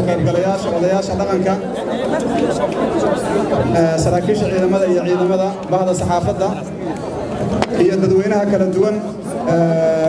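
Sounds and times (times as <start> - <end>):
man talking into microphones: 0.0 - 1.8, 2.5 - 10.0
voices chattering: 0.0 - 10.0.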